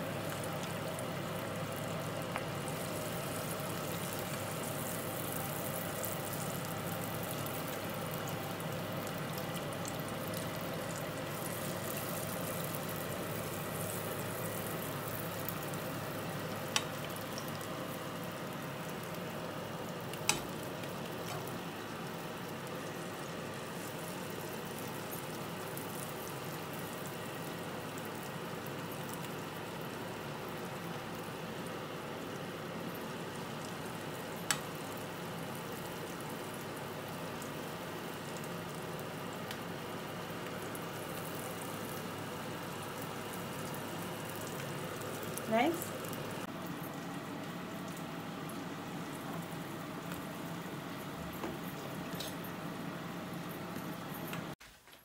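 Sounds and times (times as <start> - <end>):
oil sizzling in a pan: 0.0 - 54.6.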